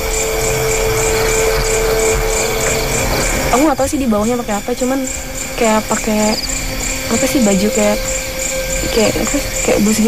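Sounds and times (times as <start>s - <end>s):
eerie held music note: 0.0s - 10.0s
faint high pulse: 0.0s - 10.0s
steady hiss: 0.0s - 10.0s.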